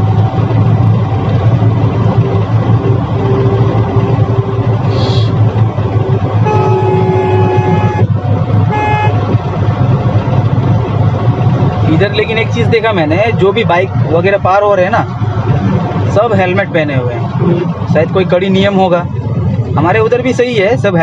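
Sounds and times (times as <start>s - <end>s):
car engine and road noise: 0.0s - 21.0s
vehicle horn honking: 6.4s - 8.1s, 8.7s - 9.3s.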